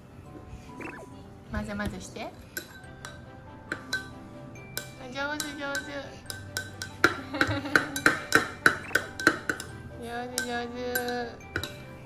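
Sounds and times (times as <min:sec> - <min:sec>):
background music: 0:00.0 - 0:12.0
metal spoon clinking in glass: 0:02.6 - 0:09.8, 0:10.4 - 0:11.9.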